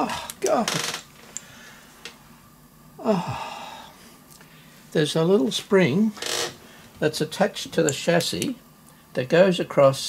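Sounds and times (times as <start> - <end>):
low steady hiss: 0.0 - 10.0.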